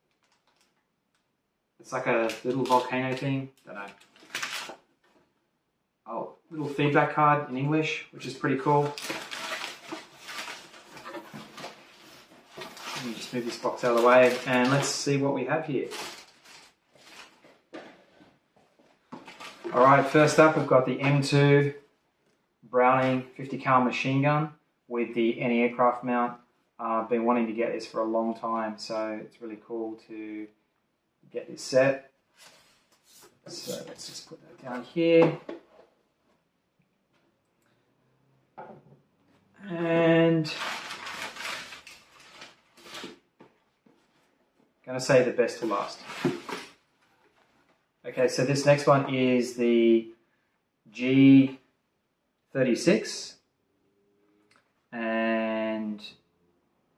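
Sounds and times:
paper and cardboard rustling: 0:02.2 - 0:05.2, 0:08.2 - 0:21.3, 0:32.4 - 0:35.9, 0:40.4 - 0:44.4, 0:45.5 - 0:47.7.

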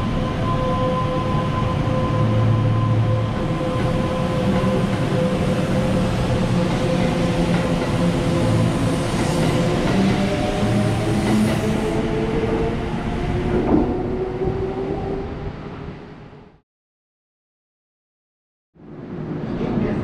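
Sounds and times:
train cars rumbling and clattering: 0:00.0 - 0:15.4.

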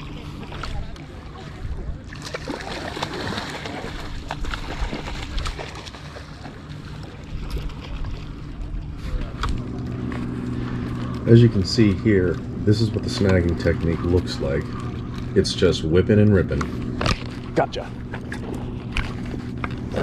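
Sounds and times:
seawater sloshing and splashing: 0:00.0 - 0:20.0.

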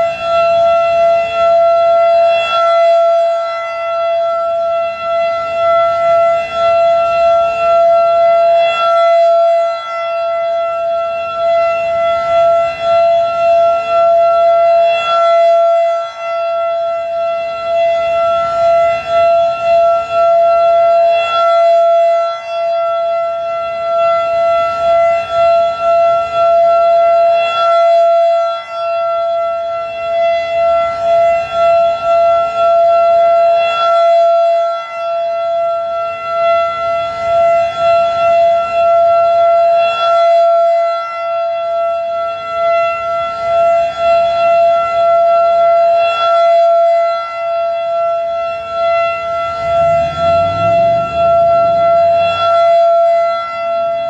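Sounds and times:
rotating warning siren: 0:00.0 - 0:54.0.

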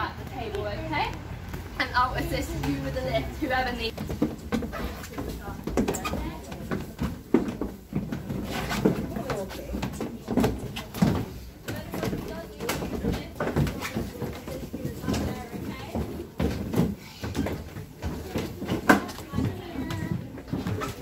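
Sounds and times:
people talking indistinctly: 0:00.0 - 0:04.0
footsteps on wooden stairs: 0:00.0 - 0:21.0.

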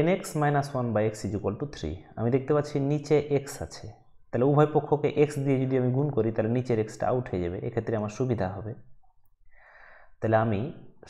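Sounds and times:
person speaking: 0:00.0 - 0:08.9
soft in-breath: 0:09.5 - 0:10.2.

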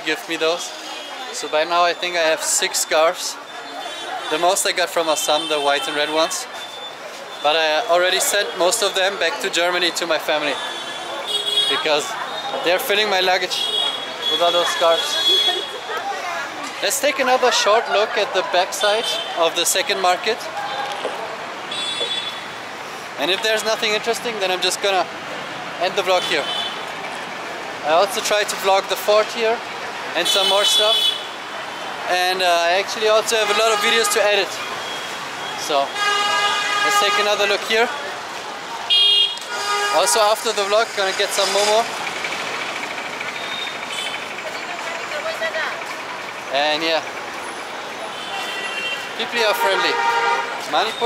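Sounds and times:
street traffic hum: 0:00.0 - 0:51.0.

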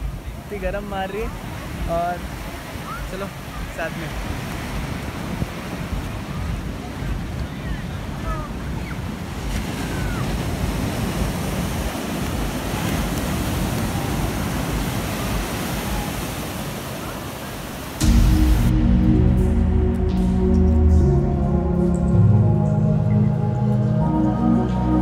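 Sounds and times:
surf breaking on beach: 0:00.0 - 0:18.7
wind buffeting microphone: 0:00.0 - 0:20.4
background music: 0:17.8 - 0:25.0.

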